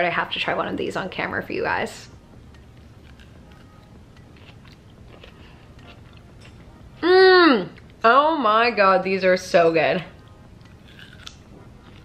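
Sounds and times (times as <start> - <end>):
faint chewing: 2.5 - 6.7, 10.2 - 12.0.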